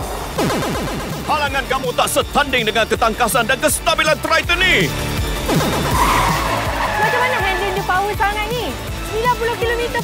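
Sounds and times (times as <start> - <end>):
tyres skidding and squealing: 5.9 - 8.5.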